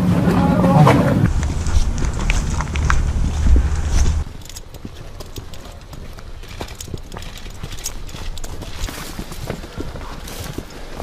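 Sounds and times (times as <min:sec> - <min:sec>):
wind buffeting microphone: 0:01.1 - 0:11.0
footsteps on stony dirt: 0:01.3 - 0:11.0.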